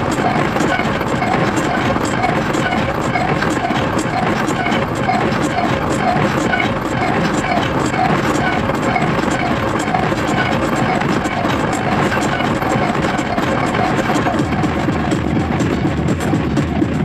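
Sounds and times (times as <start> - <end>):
industrial hardcore electronic music: 0.0 - 17.0.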